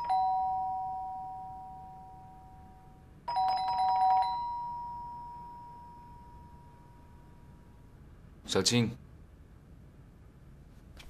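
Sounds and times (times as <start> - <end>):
two-tone doorbell chime: 0.0 - 7.8.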